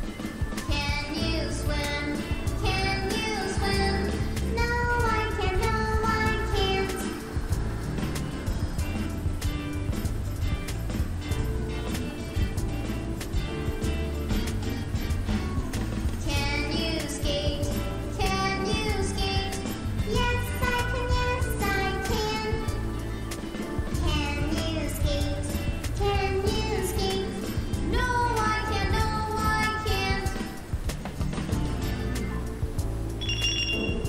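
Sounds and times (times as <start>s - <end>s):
child singing: 0.0s - 7.7s, 15.4s - 23.0s, 23.6s - 30.8s
backing track music: 0.0s - 34.0s.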